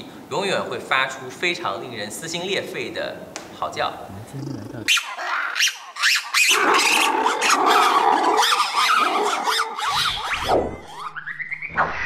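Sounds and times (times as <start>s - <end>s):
lemur howling: 4.3s - 11.1s.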